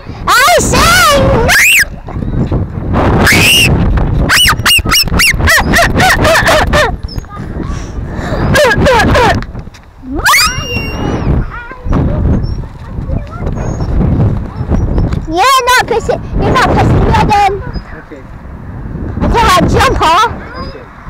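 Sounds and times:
children shrieking and laughing: 0.0 - 2.5, 3.2 - 14.0
wind rumble on microphone: 0.0 - 21.0.

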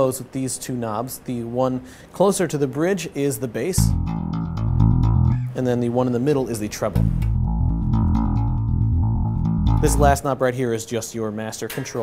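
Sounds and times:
electric bass low notes: 3.8 - 5.6, 6.8 - 10.2.

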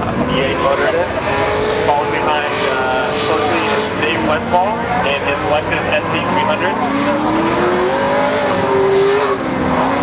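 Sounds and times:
car engine at high revs: 0.0 - 10.0.

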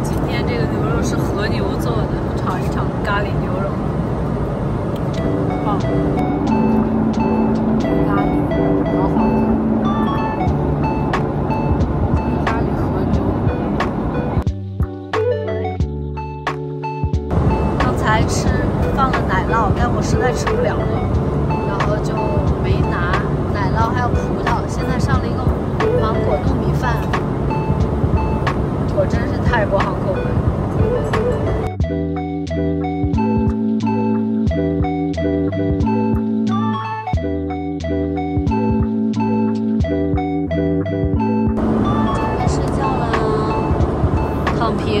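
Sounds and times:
woman speaking: 0.0 - 3.8, 5.5 - 6.2, 7.8 - 9.4, 12.3 - 13.4, 17.8 - 27.2, 28.9 - 31.6, 41.9 - 43.8, 44.4 - 45.0
airliner cabin noise: 0.0 - 14.4, 17.3 - 31.7, 41.6 - 45.0
background music: 5.0 - 45.0
person talking: 17.8 - 27.2, 41.9 - 43.7.

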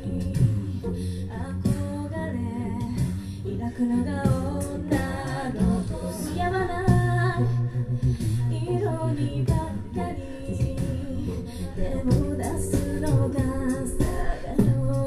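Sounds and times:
deep bass voice singing: 0.0 - 15.0
sung backing harmonies: 0.0 - 15.0
woman singing lead: 0.0 - 15.0.

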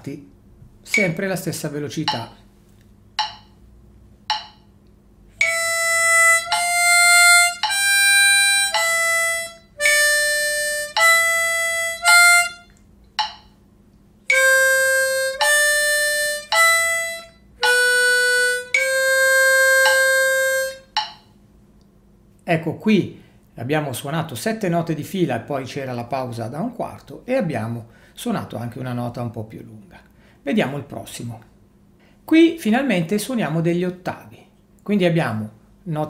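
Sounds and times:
metronome beeps: 3.2 - 3.6, 4.3 - 4.7, 13.2 - 13.5, 17.6 - 21.2
harmonica playing single notes: 5.4 - 12.7, 14.3 - 21.1.

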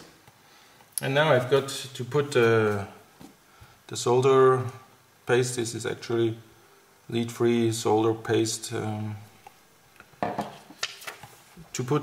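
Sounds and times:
objects clattering on table: 10.1 - 11.3.

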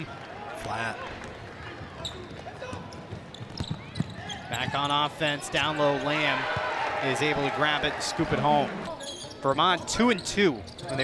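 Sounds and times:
sneaker squeaks: 1.8 - 5.1, 8.9 - 11.0.

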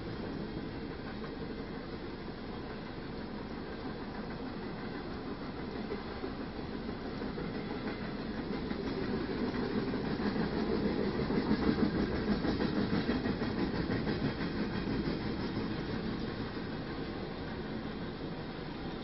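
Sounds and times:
freight train wheels rumbling: 0.0 - 19.0.

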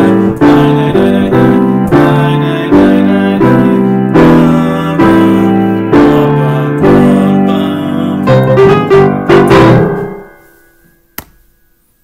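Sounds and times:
piano chord ringing: 0.0 - 11.9
sharp click: 11.2 - 11.4.

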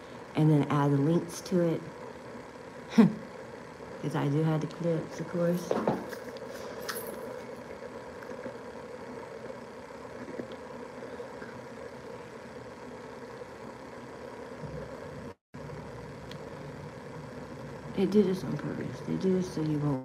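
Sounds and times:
air handling room hum: 0.0 - 20.0.

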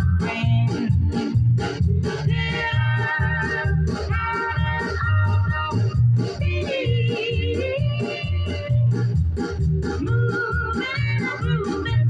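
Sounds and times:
rhythm and blues vocal record: 0.0 - 12.0.

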